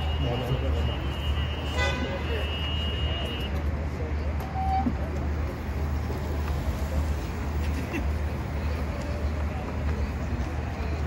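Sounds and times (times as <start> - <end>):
horn toot: 0.0 - 3.5
road rumble: 0.0 - 11.0.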